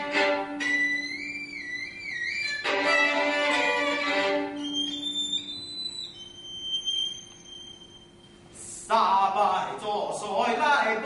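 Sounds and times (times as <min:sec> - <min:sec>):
violin high sustained note: 0:00.0 - 0:08.3.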